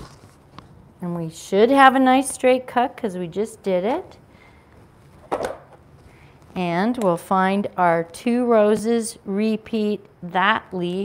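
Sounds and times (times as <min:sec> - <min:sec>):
fabric rustle: 0:00.0 - 0:00.8.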